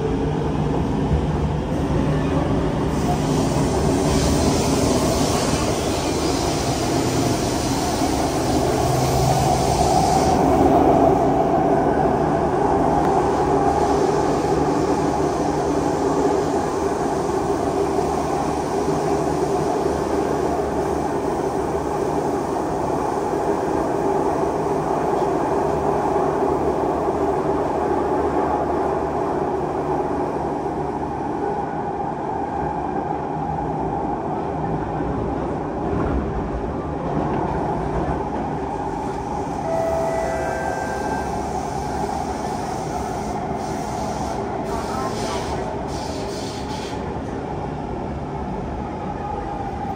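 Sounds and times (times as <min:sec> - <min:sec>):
train wheels rumbling on rail: 0:00.0 - 0:49.9
brief high-pitched tones: 0:39.6 - 0:41.5.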